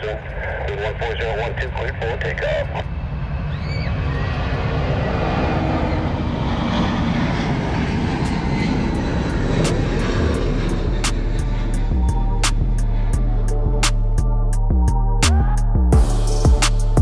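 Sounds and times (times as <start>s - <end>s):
jet engines rumbling at takeoff: 0.0s - 17.0s.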